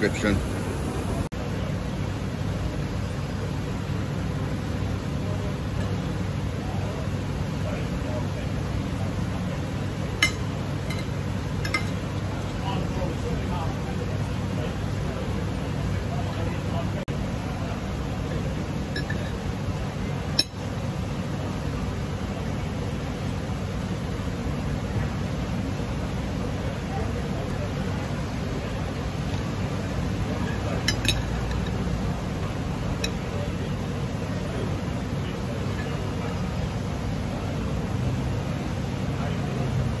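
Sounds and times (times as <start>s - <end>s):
cutlery clinking on plate: 30.9s - 31.8s.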